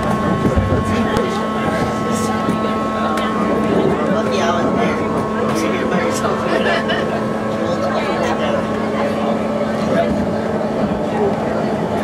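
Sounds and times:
train car rumble: 0:00.0 - 0:12.0
whining propulsion tones: 0:00.0 - 0:12.0.

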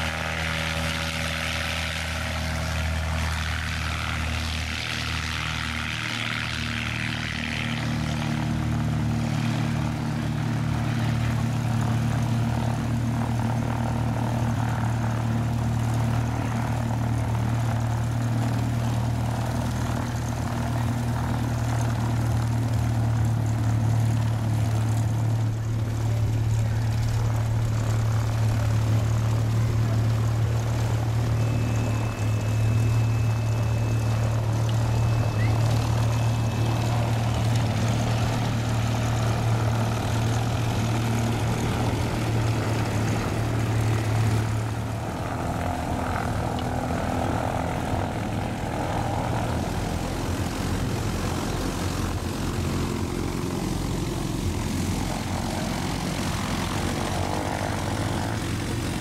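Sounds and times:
light plane engine taxiing: 0:00.0 - 0:59.0
propeller airplane engine drone: 0:00.0 - 0:59.0.

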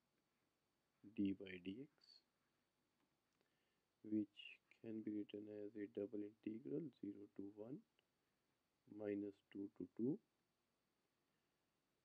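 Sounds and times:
man speaking: 0:01.1 - 0:02.2, 0:04.1 - 0:07.9, 0:08.9 - 0:10.2.

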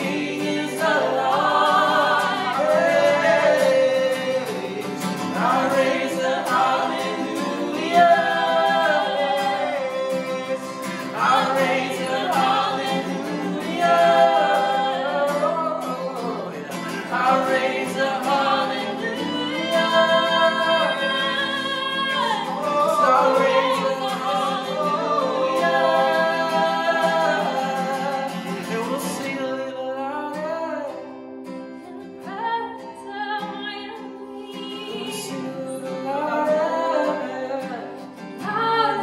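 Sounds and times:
man and woman singing in harmony: 0:00.0 - 0:31.2, 0:32.0 - 0:39.0
strummed acoustic guitar: 0:00.0 - 0:39.0.

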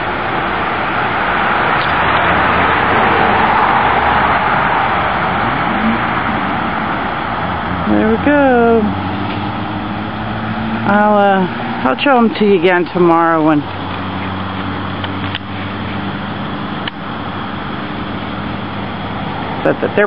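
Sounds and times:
vehicle passing road noise: 0:00.0 - 0:20.0.

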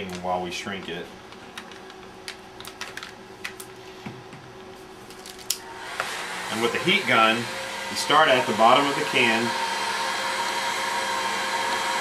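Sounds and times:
tape pressed onto plastic crinkling: 0:05.0 - 0:05.6.

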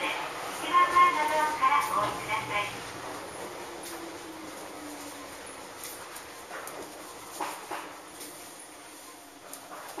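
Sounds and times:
train running noise: 0:00.0 - 0:10.0.

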